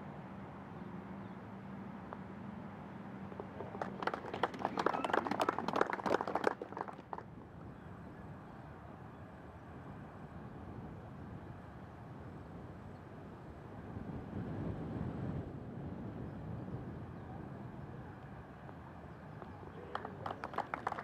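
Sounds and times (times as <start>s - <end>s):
crowd clapping: 3.3s - 7.3s, 19.4s - 21.0s.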